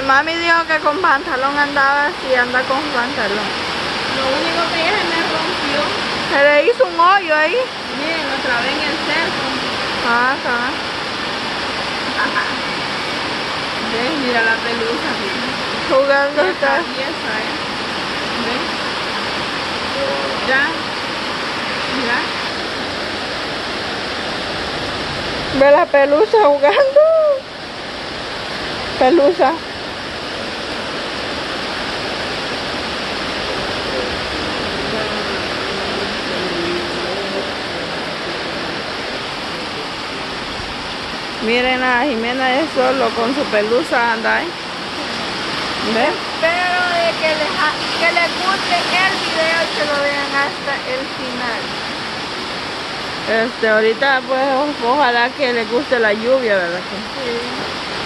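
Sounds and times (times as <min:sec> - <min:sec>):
heavy rain pouring: 0:00.0 - 0:58.0.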